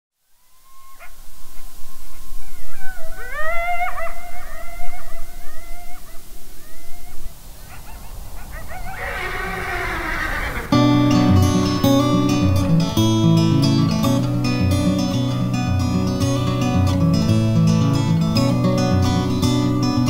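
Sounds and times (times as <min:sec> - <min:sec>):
animals howling: 0:00.4 - 0:13.9.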